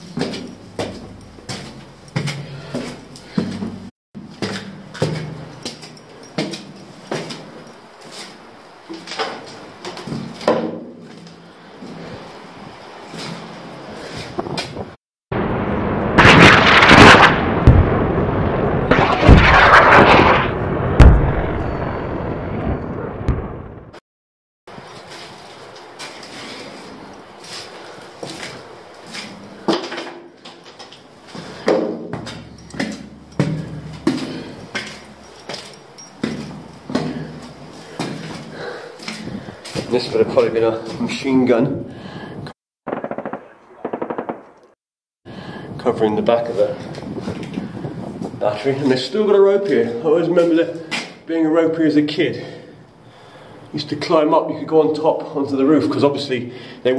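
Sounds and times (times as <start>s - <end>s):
explosions rumbling: 15.3s - 24.0s
gunshot cracks: 16.2s - 18.1s, 18.9s - 22.0s
machine-gun fire bursts: 42.9s - 44.5s.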